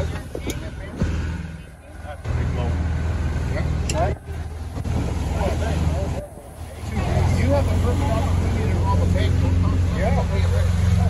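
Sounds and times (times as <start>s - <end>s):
boat engine droning: 0.0s - 11.0s.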